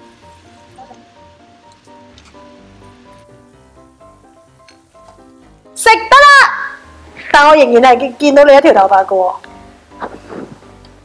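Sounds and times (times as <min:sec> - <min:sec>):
soft background music: 0:00.0 - 0:11.0
tofu sizzling in a pan: 0:02.5 - 0:05.0
loud high-pitched voice: 0:05.8 - 0:06.8.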